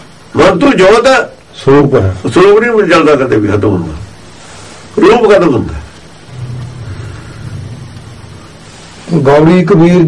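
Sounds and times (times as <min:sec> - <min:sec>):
steady background hiss: 0:00.0 - 0:10.0
low rumble: 0:06.2 - 0:08.7.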